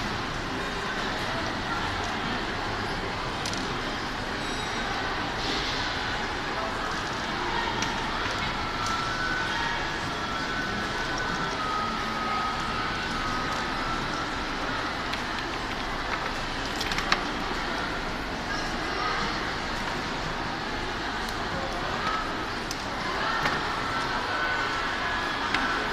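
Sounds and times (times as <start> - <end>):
large hall background noise: 0.0 - 25.9.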